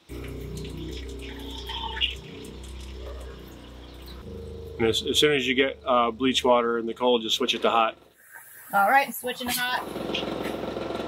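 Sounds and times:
faucet running into sink: 0.0s - 4.3s
steady low hum: 0.1s - 8.2s.

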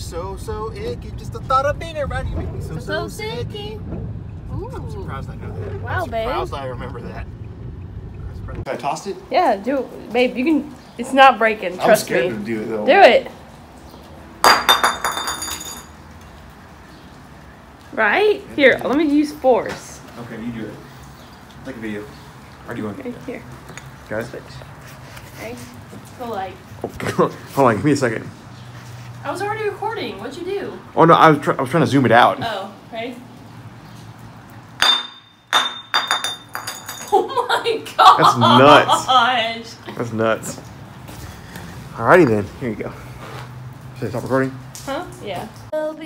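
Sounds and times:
glass bottle clattering on concrete: 14.4s - 16.0s, 34.8s - 37.4s.

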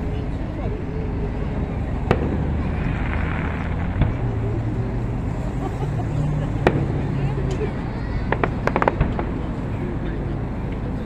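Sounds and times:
fireworks popping and cracking: 2.0s - 5.5s, 6.4s - 7.6s, 8.3s - 9.8s.

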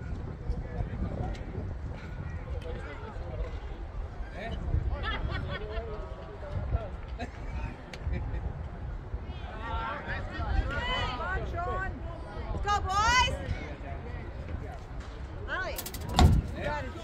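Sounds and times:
sharp knock: 15.8s - 16.6s.

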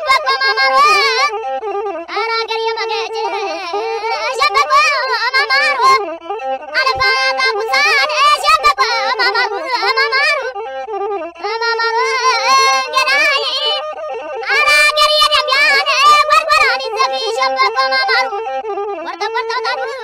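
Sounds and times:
ornamented singing voice: 0.0s - 20.0s.

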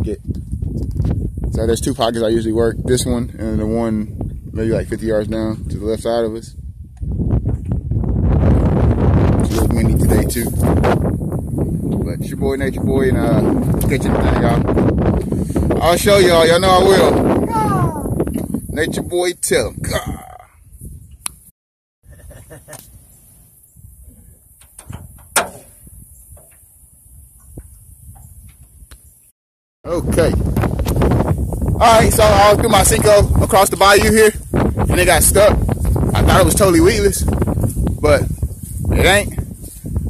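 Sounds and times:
wind buffeting microphone: 0.0s - 21.5s, 23.7s - 29.3s, 29.9s - 40.0s.

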